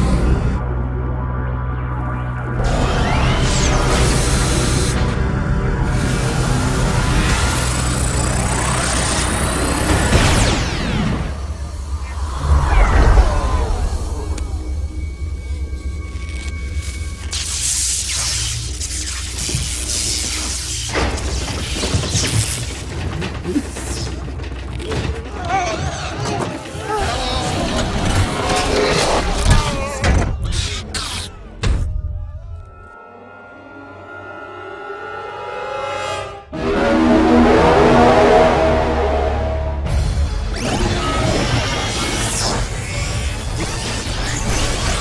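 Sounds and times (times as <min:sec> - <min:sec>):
deep rumble: 0:10.6 - 0:17.8
orchestral film score: 0:22.4 - 0:45.0.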